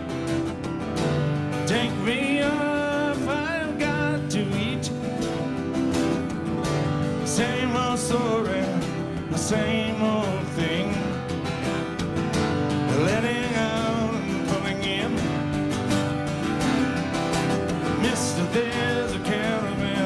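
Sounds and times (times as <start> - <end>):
acoustic guitars: 0.0 - 20.0.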